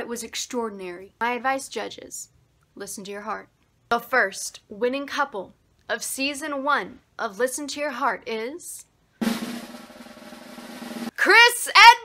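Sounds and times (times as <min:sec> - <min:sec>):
snare drum roll: 0:09.2 - 0:11.1.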